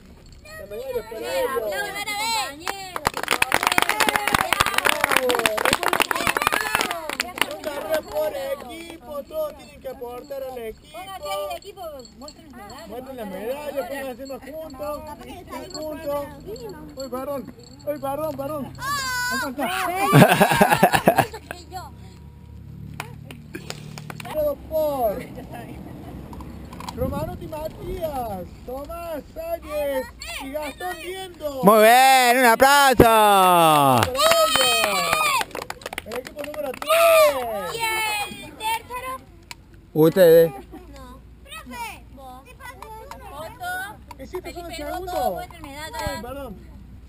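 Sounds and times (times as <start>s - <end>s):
voices calling out: 0.3s - 39.3s
background chatter: 0.4s - 31.8s
group clapping: 2.6s - 9.6s, 22.9s - 24.4s, 32.4s - 38.3s
person calling out: 31.7s - 34.2s.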